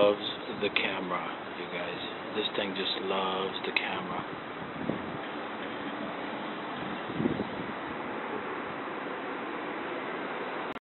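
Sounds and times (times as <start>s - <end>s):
wind on microphone: 4.1s - 8.9s.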